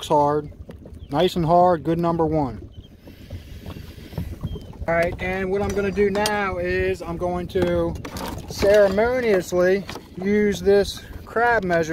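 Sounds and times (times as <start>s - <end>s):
water lapping at hull: 0.0s - 11.9s
wind on microphone: 0.0s - 11.9s
light knocks in a boat: 2.3s - 11.9s.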